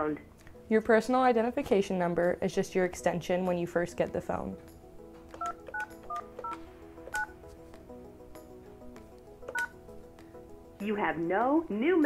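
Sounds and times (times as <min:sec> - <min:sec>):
keypad touch-tone beeps: 0:05.4 - 0:07.3, 0:09.5 - 0:09.8.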